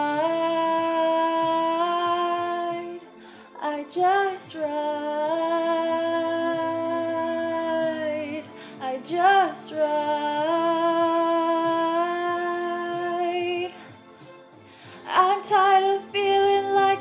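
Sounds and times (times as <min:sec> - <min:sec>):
woman singing sustained notes: 0:00.0 - 0:13.9.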